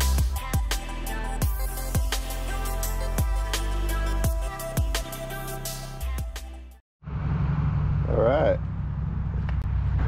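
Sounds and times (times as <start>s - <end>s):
road traffic rumble: 7.0s - 10.0s.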